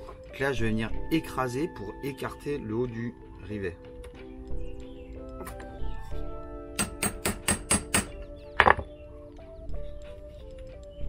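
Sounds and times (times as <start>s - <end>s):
background music: 0.0s - 11.0s
hammer striking metal punch: 6.8s - 8.8s.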